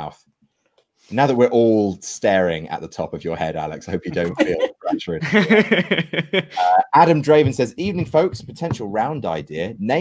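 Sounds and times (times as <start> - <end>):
men talking: 1.1 - 10.0
men laughing over video call: 3.7 - 7.2.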